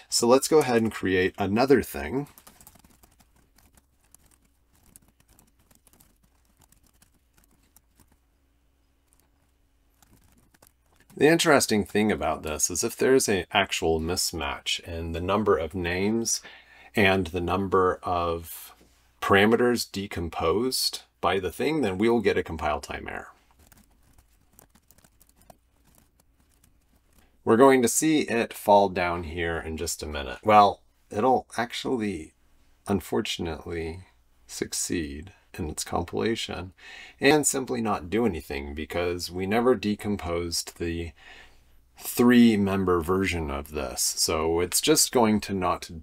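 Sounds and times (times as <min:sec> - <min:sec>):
typing on computer keyboard: 0:02.2 - 0:08.2, 0:09.1 - 0:11.2, 0:23.6 - 0:27.3.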